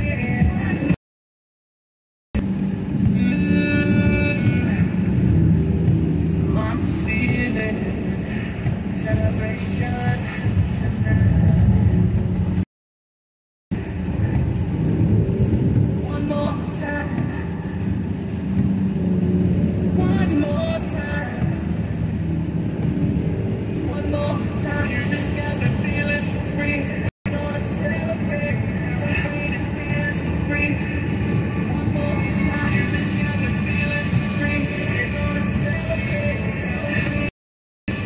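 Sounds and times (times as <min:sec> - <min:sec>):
car cabin road noise: 0:02.4 - 0:12.6, 0:13.7 - 0:37.3
radio playing voices and music: 0:02.4 - 0:12.6, 0:19.6 - 0:37.3
tyre hiss on wet road: 0:06.0 - 0:09.2.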